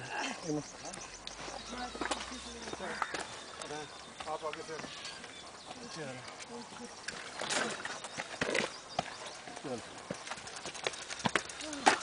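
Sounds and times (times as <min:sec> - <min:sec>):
footsteps on stony path: 0:00.4 - 0:12.0.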